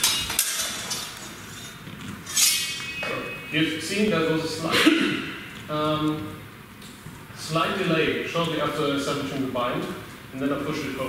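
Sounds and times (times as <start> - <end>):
sword blades clashing: 2.3 - 3.6.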